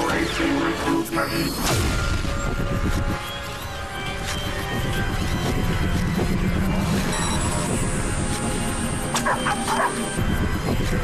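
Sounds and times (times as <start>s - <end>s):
soundtrack music: 0.0s - 11.0s
dog barking: 9.2s - 10.1s.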